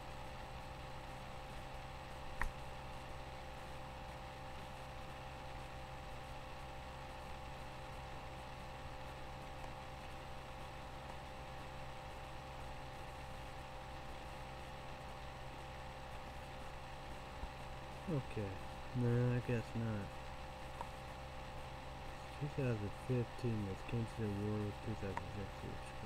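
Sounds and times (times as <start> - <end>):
faint steady tones: 0.0 - 26.0
low hum and hiss: 0.0 - 26.0.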